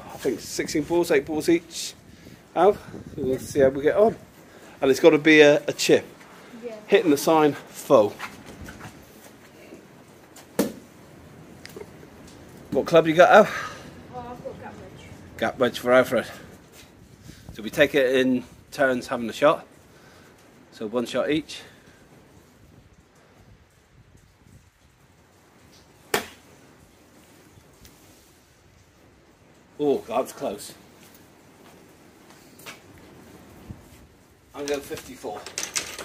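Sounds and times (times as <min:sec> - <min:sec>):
faint background noise: 0:00.0 - 0:36.0.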